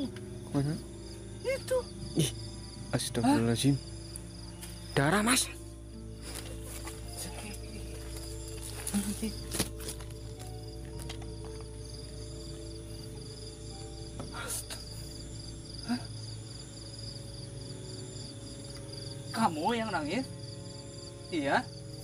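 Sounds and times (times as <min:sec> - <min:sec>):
crickets chirping: 0:00.0 - 0:22.0
low ambient music drone: 0:00.0 - 0:22.0.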